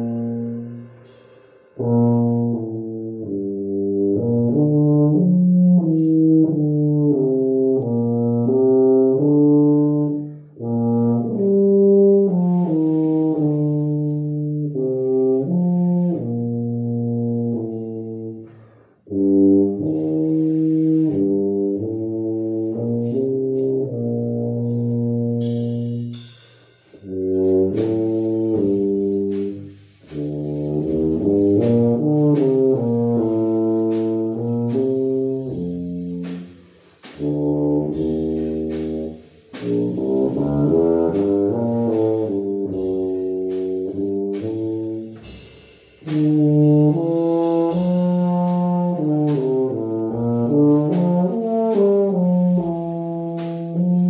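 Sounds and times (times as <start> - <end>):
tuba playing a melody: 0.0 - 26.2, 27.0 - 54.0
drum kit with cymbals: 0.0 - 54.0.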